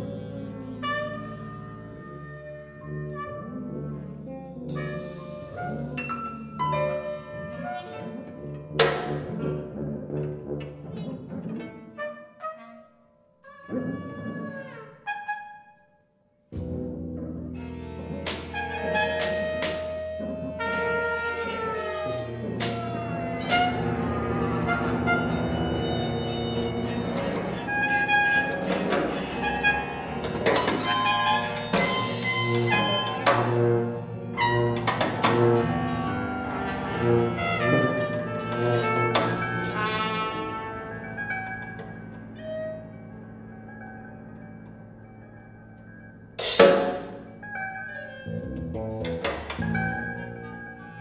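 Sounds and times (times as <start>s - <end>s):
bowed cello: 0.0s - 15.7s, 16.6s - 51.0s
wind and brass notes: 18.5s - 44.0s
sharp percussion strikes: 46.4s - 47.3s.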